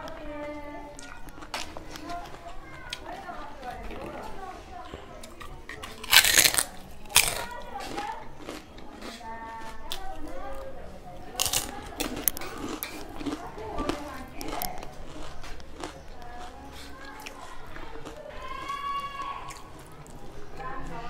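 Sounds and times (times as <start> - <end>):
crunchy chewing: 0.0 - 21.0.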